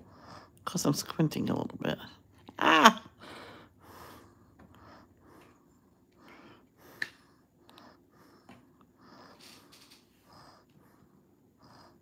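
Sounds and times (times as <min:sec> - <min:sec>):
soft breathing: 0:03.1 - 0:12.0.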